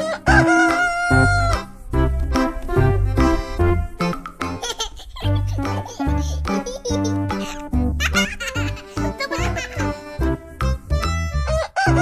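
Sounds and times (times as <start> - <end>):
rooster crowing: 0.0 - 1.8, 11.5 - 12.0
keyboard music with a beat: 0.0 - 12.0.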